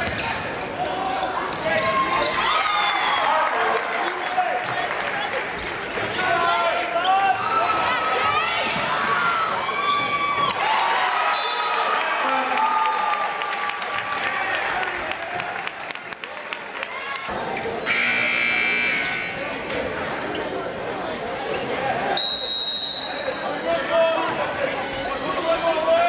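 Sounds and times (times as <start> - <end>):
sneaker squeaks: 0.0 - 0.8, 20.2 - 20.7, 24.6 - 25.3
crowd voices: 0.0 - 26.0
scoreboard horn: 17.9 - 19.4.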